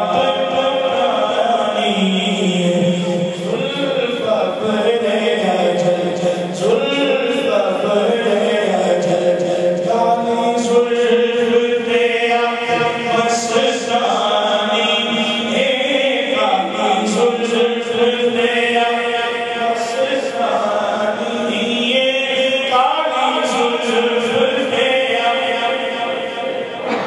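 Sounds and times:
man singing over loudspeakers: 0.0s - 27.0s.

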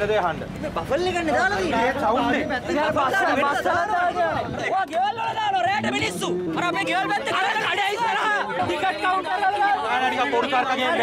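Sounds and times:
man speaking rapidly: 0.0s - 11.0s
voices chattering: 0.0s - 11.0s.

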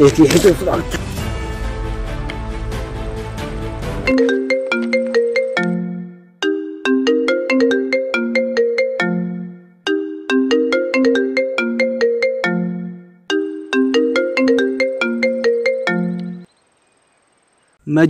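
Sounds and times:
mobile phone ringtone: 4.1s - 16.5s.

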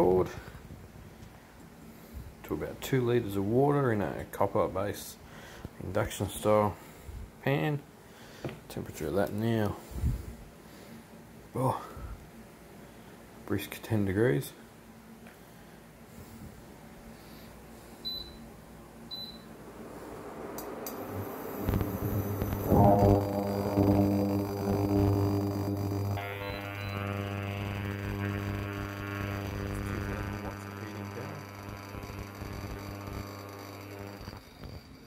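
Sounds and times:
induction hob electrical hum: 9.0s - 35.0s
touch control beeps: 18.1s - 18.4s, 19.1s - 19.5s.

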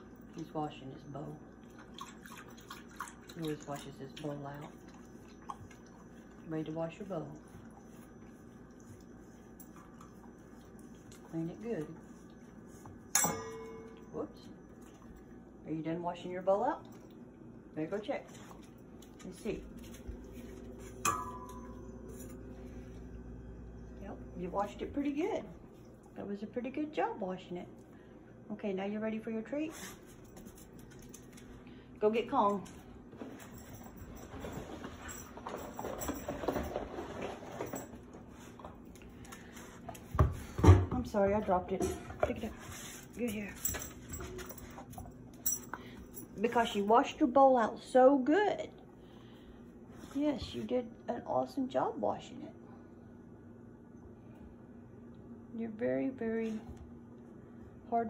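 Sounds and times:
dog licking metal bowl: 1.6s - 13.3s
ticks against metal bowl: 13.2s - 14.1s, 21.0s - 21.8s.

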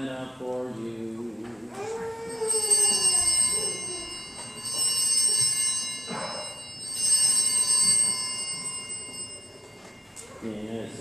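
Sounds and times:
altar bells ringing: 2.0s - 11.0s.

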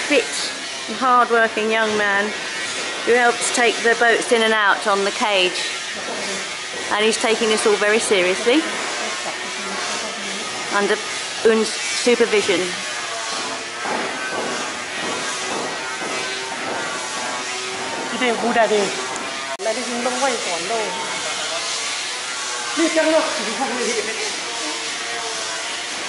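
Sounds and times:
people talking: 6.9s - 8.8s, 10.7s - 12.8s, 22.8s - 24.8s.

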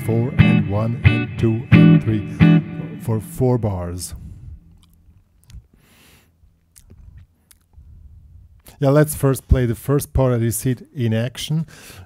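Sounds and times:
low steady hum: 0.0s - 8.8s.

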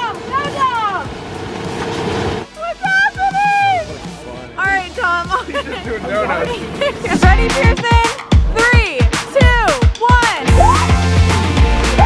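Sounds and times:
electric blower rushing air: 0.0s - 2.6s.

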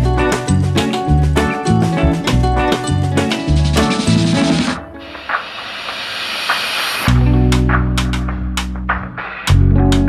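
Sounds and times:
steady hiss: 5.0s - 7.1s.

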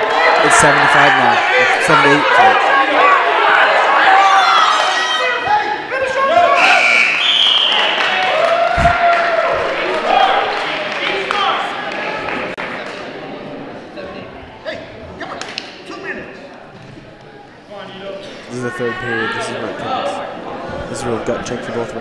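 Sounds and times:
people shouting: 0.0s - 11.8s.

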